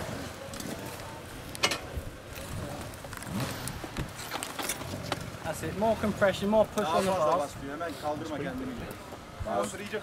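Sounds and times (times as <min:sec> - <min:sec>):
faint voices: 0:00.0 - 0:04.0.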